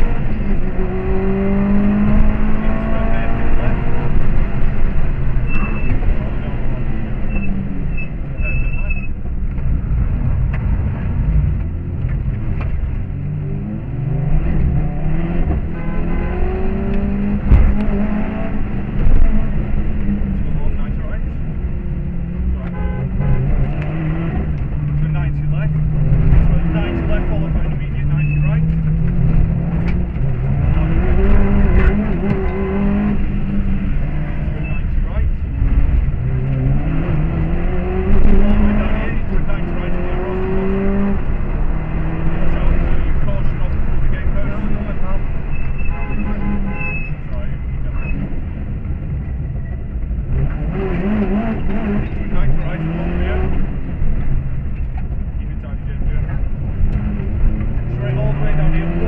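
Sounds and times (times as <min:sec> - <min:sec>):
car engine revving: 0:00.0 - 0:59.0
road and tyre noise: 0:00.0 - 0:59.0.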